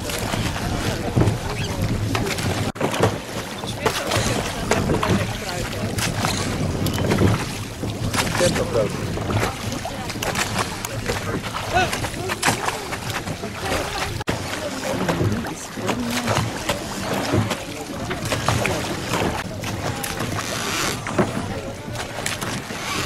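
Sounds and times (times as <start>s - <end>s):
boat noise: 0.0s - 23.0s
water: 0.0s - 23.0s
indistinct voices: 8.3s - 23.0s.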